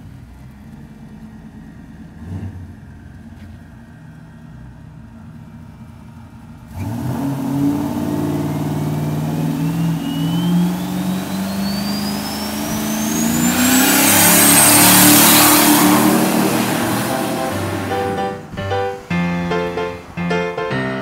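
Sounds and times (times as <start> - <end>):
pickup engine pulling away: 0.0 - 21.0
turbo whine climbing in pitch: 8.6 - 21.0.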